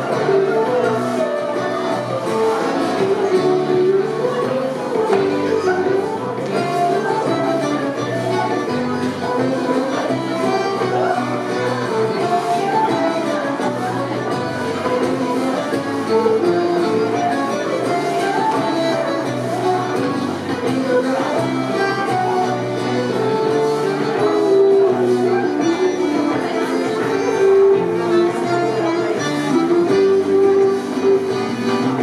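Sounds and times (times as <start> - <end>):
bass: 0.0 - 32.0
button accordion: 0.0 - 32.0
flute melody: 0.0 - 32.0
strummed guitars: 0.0 - 32.0.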